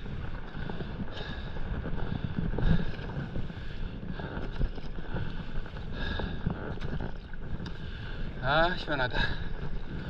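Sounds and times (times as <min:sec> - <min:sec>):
water lapping against paddleboard: 0:00.0 - 0:10.0
wind buffeting microphone: 0:00.0 - 0:10.0
faint ticks: 0:00.4 - 0:08.2.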